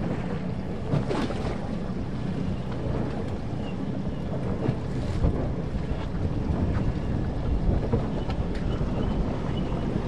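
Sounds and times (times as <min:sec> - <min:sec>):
water rushing: 0:00.0 - 0:10.0
wind buffeting microphone: 0:00.0 - 0:10.0.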